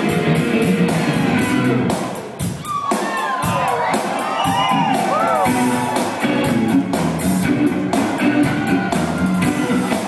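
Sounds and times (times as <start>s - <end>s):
live rock band playing: 0.0s - 10.0s
audience cheering and whooping: 2.5s - 7.0s, 7.7s - 10.0s.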